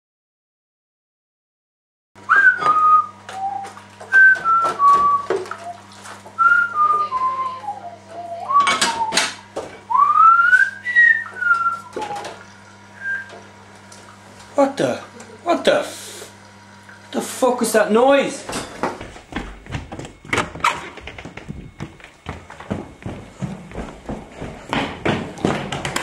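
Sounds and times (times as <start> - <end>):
low electrical hum: 2.2 - 26.0
person whistling a tune: 2.3 - 5.8, 6.4 - 12.3, 13.0 - 13.4.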